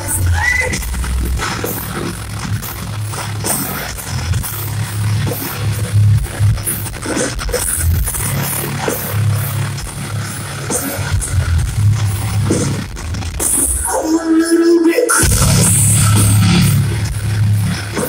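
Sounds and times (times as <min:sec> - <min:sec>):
live metal band playing: 0:00.0 - 0:14.3, 0:15.0 - 0:18.0.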